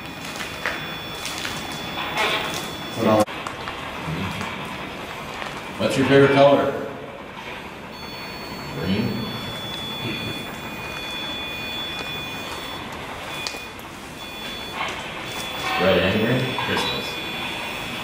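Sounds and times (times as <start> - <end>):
thin whining tones: 7.9 - 18.0.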